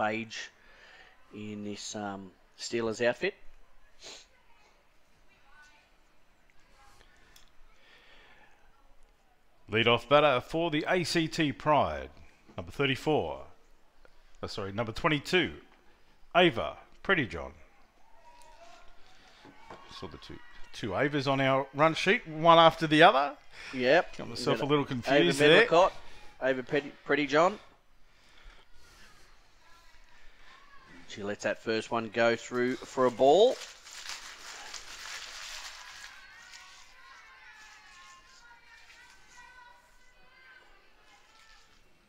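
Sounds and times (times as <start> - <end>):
faint distant voices: 0.0 - 10.6, 11.6 - 42.0
man speaking: 9.7 - 13.6, 14.4 - 15.7, 16.3 - 17.6, 19.9 - 27.8, 31.0 - 33.7.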